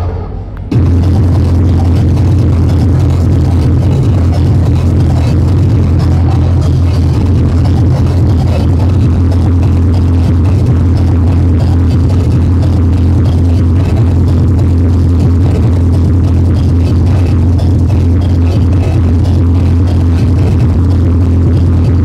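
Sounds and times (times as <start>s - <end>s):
hardcore techno music: 0.7s - 22.0s.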